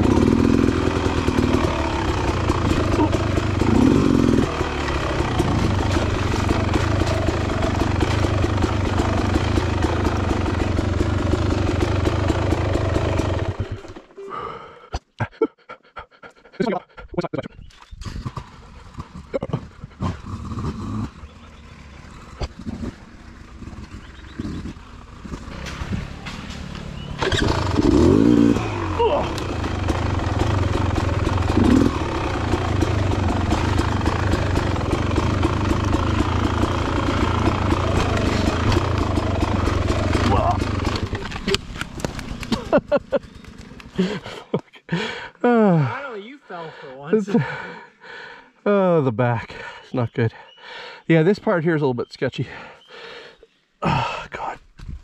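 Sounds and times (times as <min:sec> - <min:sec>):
dirt bike engine running: 0:00.0 - 0:14.1, 0:18.2 - 0:46.0.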